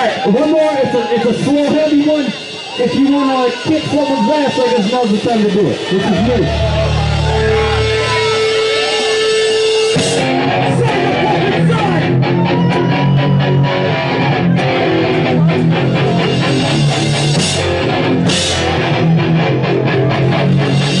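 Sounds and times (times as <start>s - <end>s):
drum kit with cymbal crashes: 4.8s - 10.4s, 16.1s - 18.8s
distorted electric guitar: 5.0s - 21.0s.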